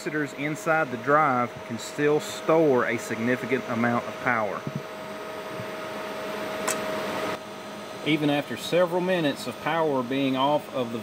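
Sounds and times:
machinery hum: 0:00.0 - 0:11.0
thin steady whine: 0:00.0 - 0:11.0
sharp click: 0:06.6 - 0:06.9.

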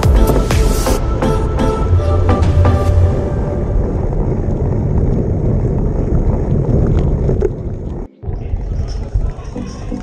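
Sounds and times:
wind buffeting microphone: 0:00.0 - 0:10.0
bicycle tyre and road rumble: 0:03.3 - 0:10.0.

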